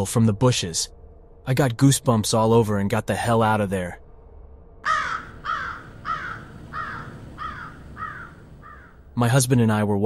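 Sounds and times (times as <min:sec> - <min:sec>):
crow cawing: 0:04.8 - 0:09.1.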